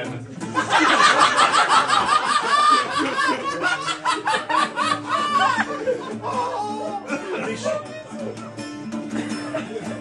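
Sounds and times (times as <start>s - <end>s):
people laughing: 0.4s - 10.0s.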